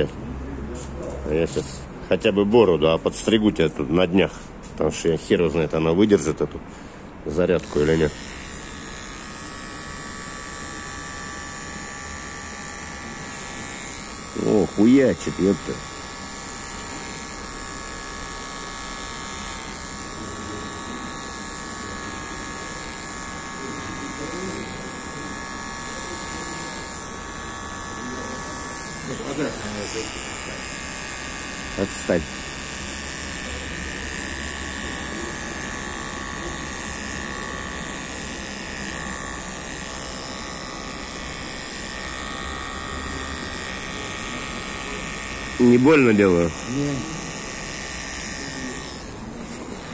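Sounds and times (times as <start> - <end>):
beard trimmer buzzing: 7.3 - 49.9.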